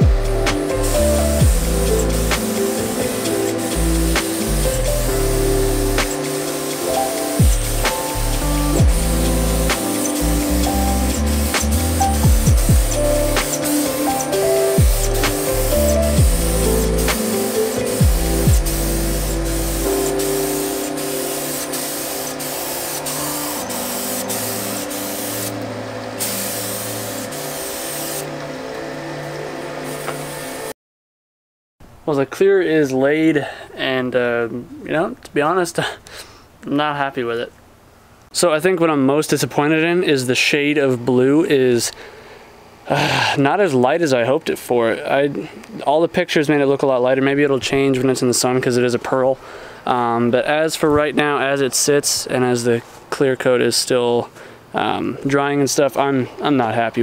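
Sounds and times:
paint spray gun hissing: 0.0s - 28.4s, 29.8s - 30.6s
background music with steady beat: 0.0s - 30.7s.

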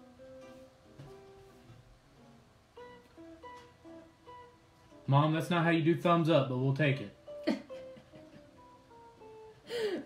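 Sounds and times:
plucked acoustic guitar melody: 0.0s - 9.7s.

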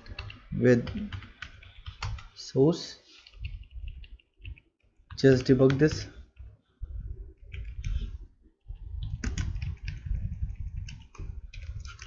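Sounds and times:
computer keyboard typing: 0.0s - 2.4s, 3.2s - 6.5s, 7.3s - 8.2s, 9.0s - 12.0s.

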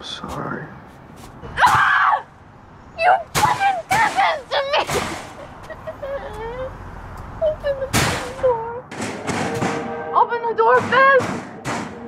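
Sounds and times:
woman crying and wailing: 4.0s - 6.8s
sharp bangs: 7.9s - 12.0s.

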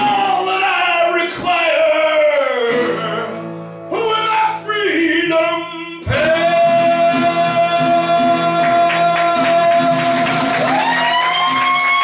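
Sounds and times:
acoustic guitar: 0.0s - 12.0s
man singing long note: 3.9s - 10.3s.

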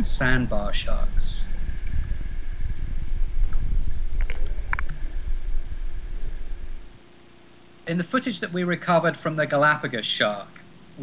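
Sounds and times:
underwater water rumble: 0.0s - 7.0s
faint steady hum: 0.0s - 11.0s.

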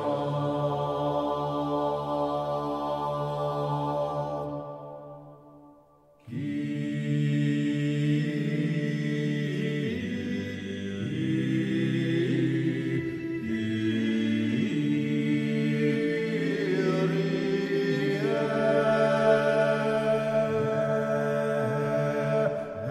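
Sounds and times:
male choir singing held chords: 0.0s - 5.6s, 6.2s - 22.9s.

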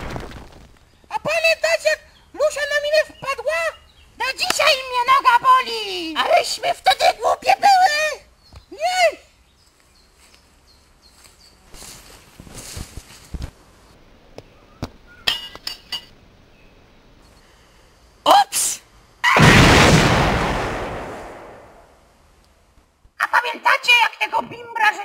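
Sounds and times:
faint rustles and clicks: 9.6s - 14.0s
loud explosion blast: 19.4s - 21.9s.

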